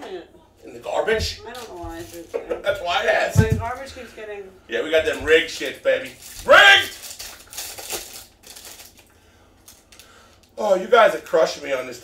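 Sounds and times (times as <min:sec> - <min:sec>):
foil wrapper crinkling: 0:05.5 - 0:10.7.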